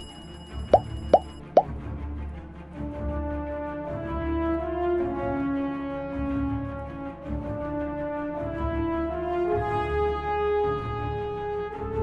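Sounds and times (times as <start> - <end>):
notification bell ding: 0.0 - 1.4
background music: 0.0 - 12.0
quick pops dropping in pitch: 0.8 - 1.3.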